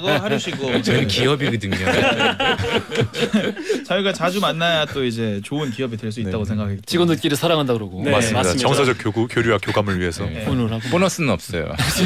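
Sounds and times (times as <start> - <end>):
men laughing: 0.0 - 4.4
conversation: 0.0 - 12.0.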